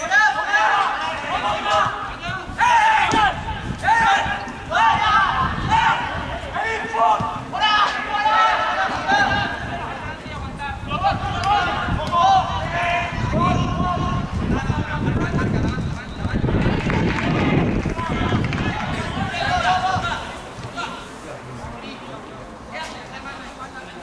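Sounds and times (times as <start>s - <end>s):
footballers shouting: 0.0s - 21.2s.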